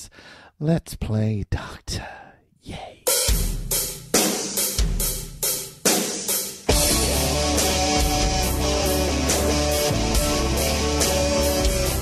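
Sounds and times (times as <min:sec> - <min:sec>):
drum and cymbal crashes: 0:03.2 - 0:10.3
heavy metal band playing: 0:06.6 - 0:12.0.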